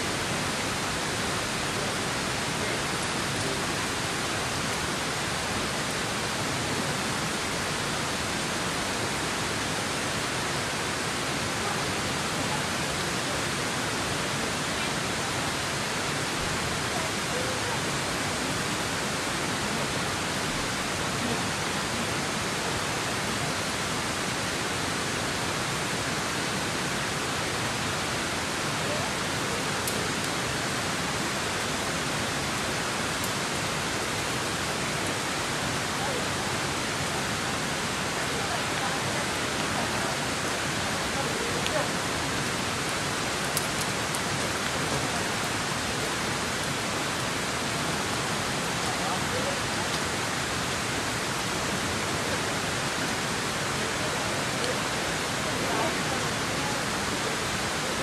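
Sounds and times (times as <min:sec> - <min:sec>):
water flowing: 0:00.0 - 0:58.0.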